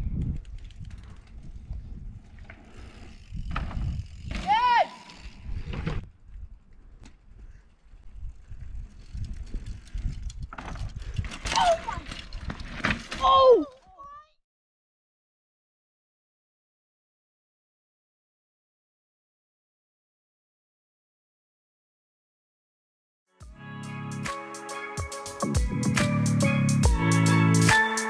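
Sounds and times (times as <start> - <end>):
wind buffeting microphone: 0.0 - 4.4, 5.2 - 12.5
mountain bike on dirt track: 0.0 - 14.2
person shouting: 4.4 - 5.2, 13.2 - 14.2.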